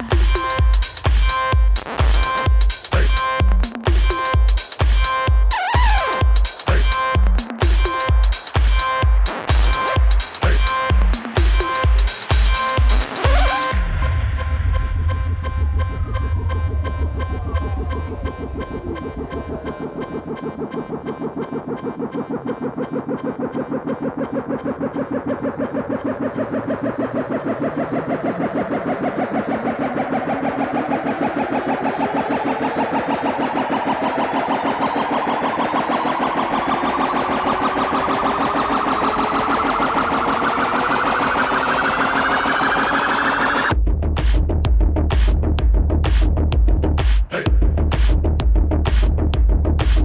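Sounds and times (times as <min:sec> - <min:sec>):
rising pulsing synth: 0:00.0 - 0:43.8
heavy bass: 0:00.0 - 0:50.0.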